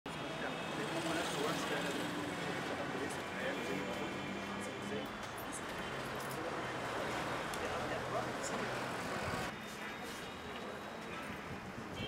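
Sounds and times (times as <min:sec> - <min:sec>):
traffic hum: 0:00.1 - 0:12.0.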